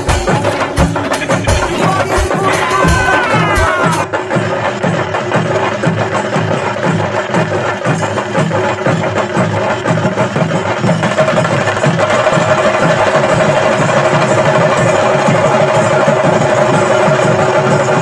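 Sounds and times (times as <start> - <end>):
fast drum percussion music: 0.0 - 18.0.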